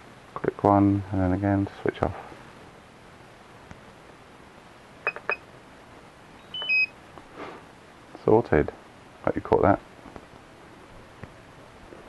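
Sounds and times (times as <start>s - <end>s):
short high beeps: 5.1s - 5.4s, 6.4s - 6.9s.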